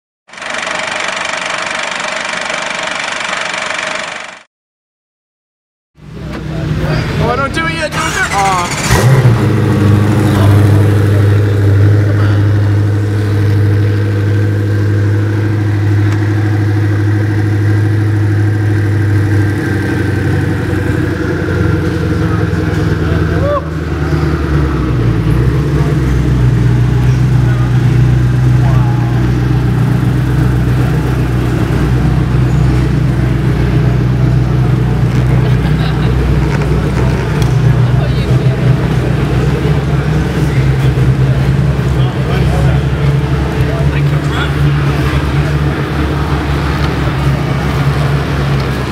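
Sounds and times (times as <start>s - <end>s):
car engine idling: 0.3s - 4.4s, 6.0s - 48.9s.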